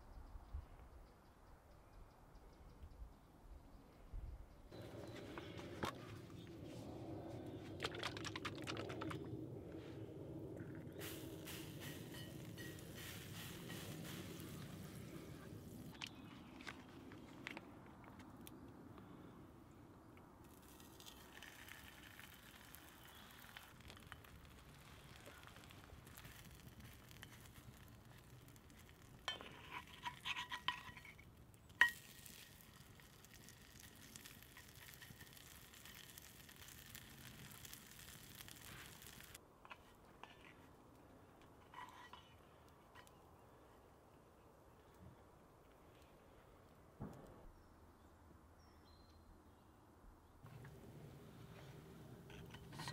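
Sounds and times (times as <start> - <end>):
small crackles: 4.7 - 47.5, 50.4 - 52.9
tofu frying in a skillet: 31.8 - 39.4.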